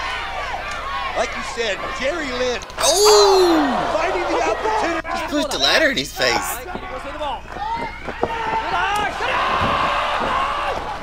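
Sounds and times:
crowd roaring and shouting: 0:00.0 - 0:06.6, 0:07.5 - 0:11.0.

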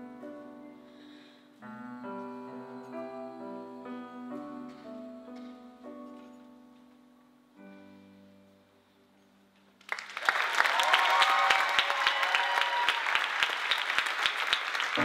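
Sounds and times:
audience applause with cheering: 0:09.8 - 0:15.0.

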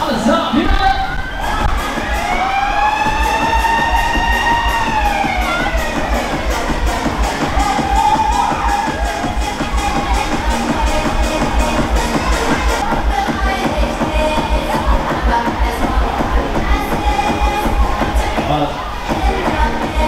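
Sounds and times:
crowd noise: 0:00.0 - 0:20.0
fairground music with bass beat: 0:00.0 - 0:20.0
siren-like wail: 0:00.9 - 0:10.0.

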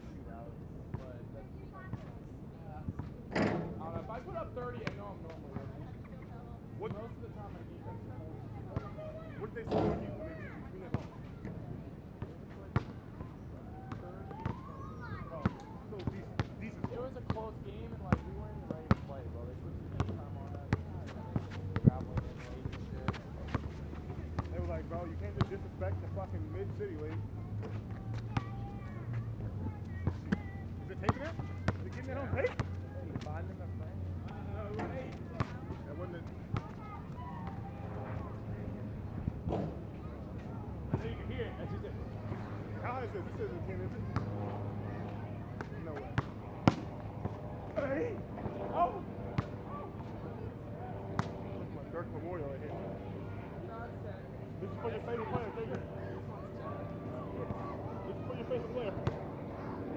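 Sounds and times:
basketball bouncing on asphalt: 0:15.5 - 0:17.4, 0:18.7 - 0:19.1, 0:19.9 - 0:23.8, 0:29.2 - 0:33.3, 0:34.3 - 0:35.6, 0:36.5 - 0:36.8.

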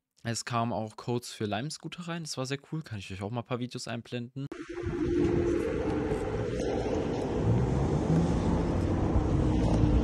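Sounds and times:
wheels rolling on asphalt: 0:04.6 - 0:10.0
wind rushing over microphone: 0:04.6 - 0:10.0.

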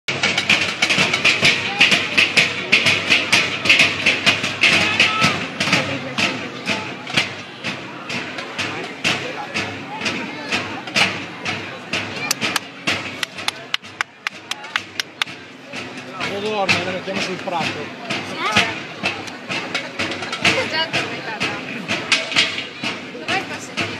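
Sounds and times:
side drums playing fast rhythm: 0:00.1 - 0:23.9.

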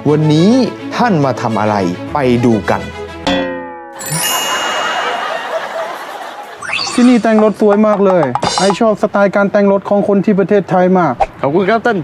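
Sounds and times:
bright chime-like ding: 0:04.0 - 0:05.5, 0:06.6 - 0:07.7
hissing shimmer: 0:04.0 - 0:05.7.

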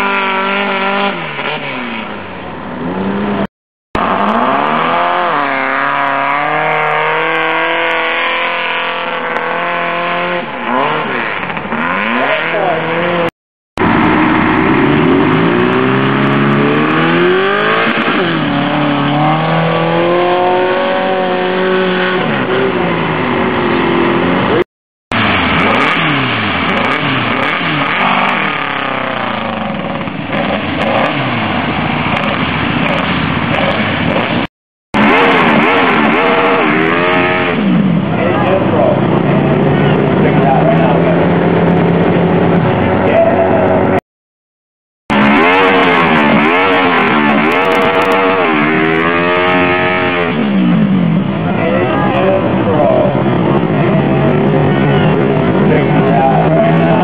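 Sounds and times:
dune buggy engines revving: 0:00.0 - 0:44.0, 0:45.1 - 0:57.0.

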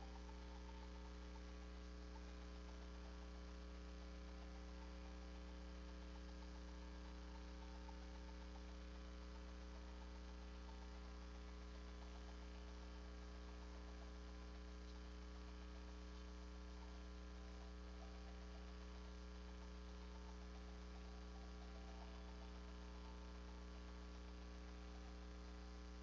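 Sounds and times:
electrical mains hum: 0:00.0 - 0:26.0.

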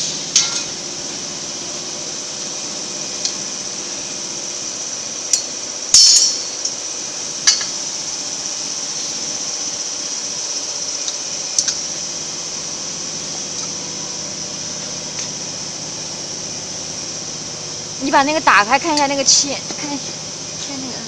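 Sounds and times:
factory machinery humming: 0:00.0 - 0:21.0
light metallic clink: 0:06.0 - 0:06.5.

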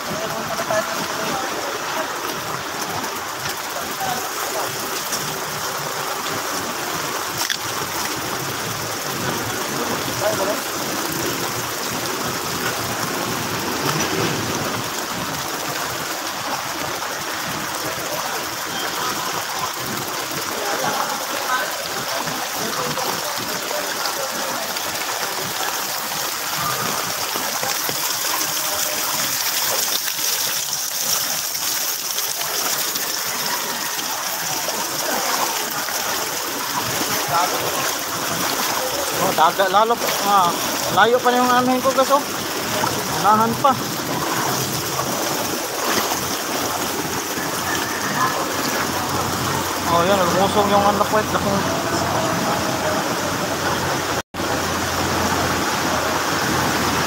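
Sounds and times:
hiss of rain and floodwater: 0:00.0 - 0:57.0
faint voices of people: 0:42.6 - 0:50.4, 0:51.1 - 0:54.2.

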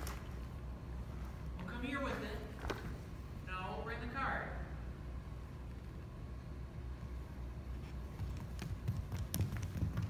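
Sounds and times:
taps on hardwood floor: 0:08.2 - 0:10.0.

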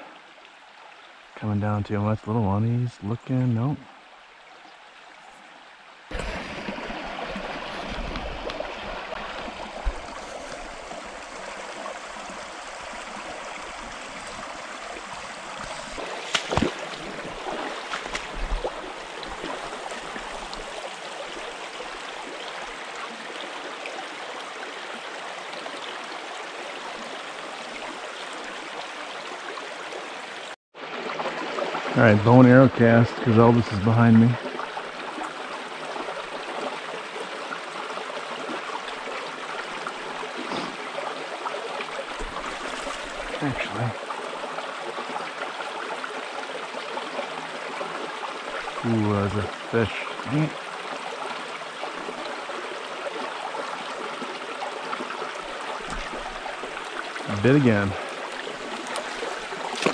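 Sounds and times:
creek water running over stones: 0:00.0 - 0:59.9.

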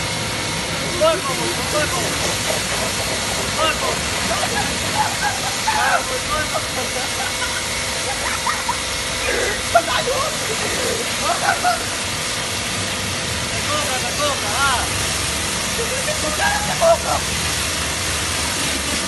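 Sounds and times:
pressure washer spraying water: 0:00.0 - 0:19.0.

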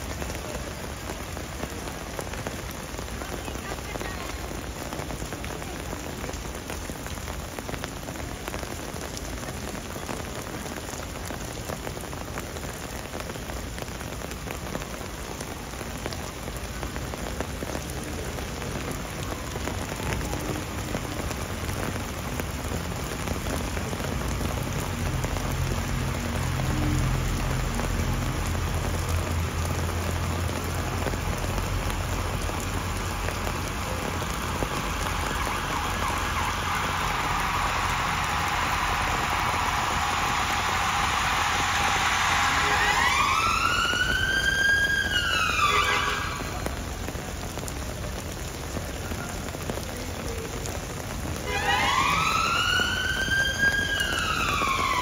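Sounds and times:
heavy rain on paving and umbrellas: 0:00.0 - 0:55.0.

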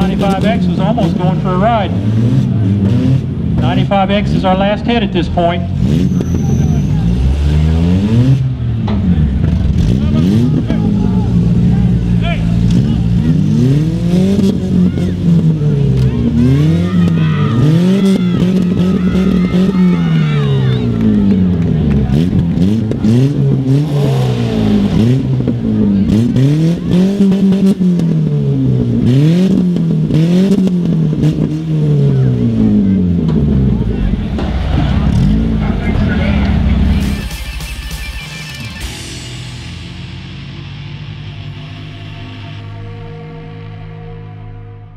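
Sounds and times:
car engines revving hard: 0:00.0 - 0:44.9.

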